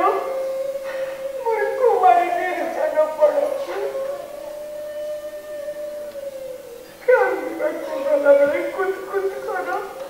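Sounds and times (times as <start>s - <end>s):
woman wailing a long note: 0.0s - 9.5s.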